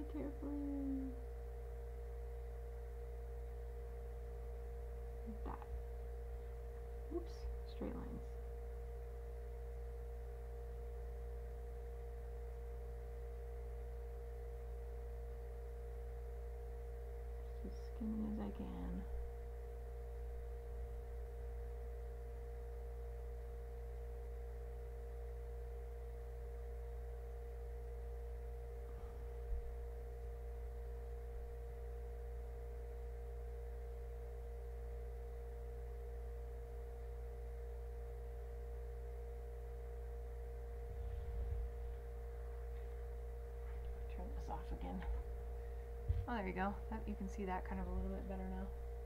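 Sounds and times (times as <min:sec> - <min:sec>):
electrical hum: 0:00.0 - 0:49.0
faint low rumble: 0:00.0 - 0:49.0.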